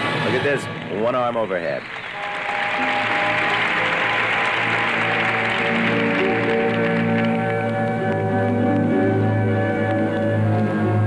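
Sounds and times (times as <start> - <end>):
crowd applause: 0.9 - 10.2
music with long held notes: 2.1 - 11.0.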